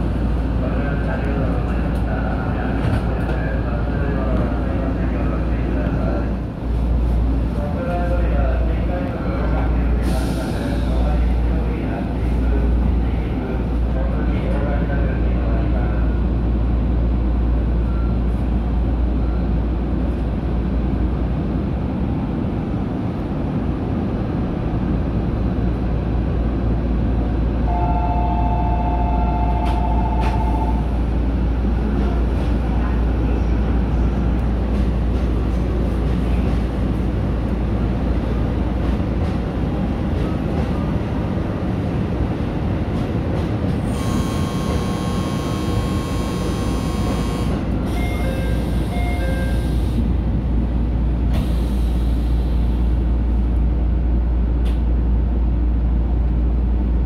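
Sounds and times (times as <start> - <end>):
electric train rumble: 0.0 - 57.0.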